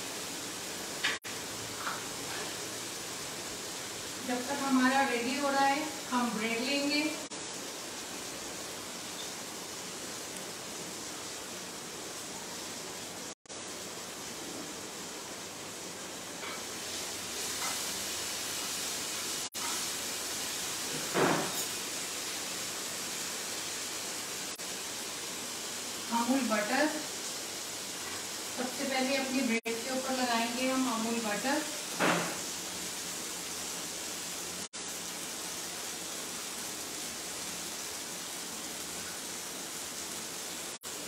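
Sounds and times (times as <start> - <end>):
food sizzling in a frying pan: 0.0 - 41.0.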